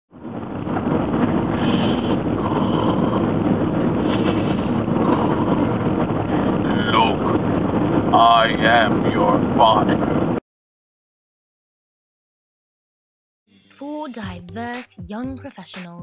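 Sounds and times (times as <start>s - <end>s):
steady vehicle noise: 0.2s - 10.4s.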